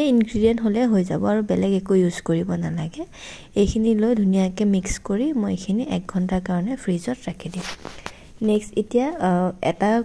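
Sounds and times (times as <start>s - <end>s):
woman talking: 0.0s - 10.0s.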